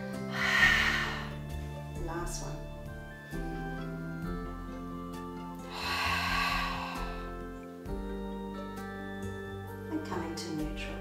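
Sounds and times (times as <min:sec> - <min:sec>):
background music of held tones: 0:00.0 - 0:11.0
long breath out: 0:00.2 - 0:01.6, 0:05.6 - 0:07.4.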